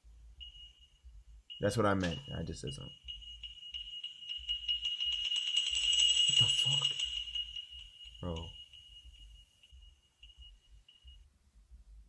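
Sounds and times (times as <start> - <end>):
high-pitched ringing tone: 0.0 - 11.3.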